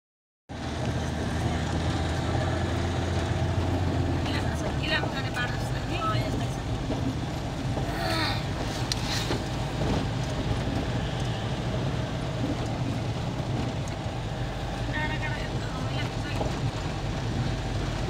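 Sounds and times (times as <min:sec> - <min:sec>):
car engine and tyre noise: 0:00.5 - 0:18.0.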